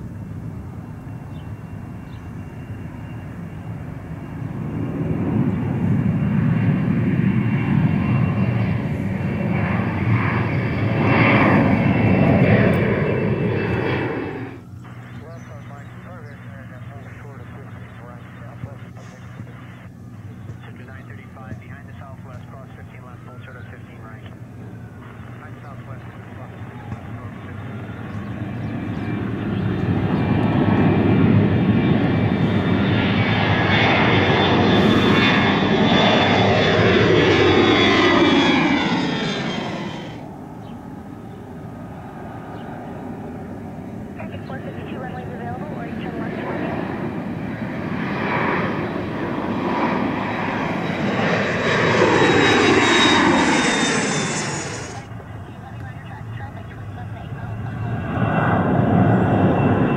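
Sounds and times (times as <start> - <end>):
jet airliners passing overhead: 0.0 - 59.9.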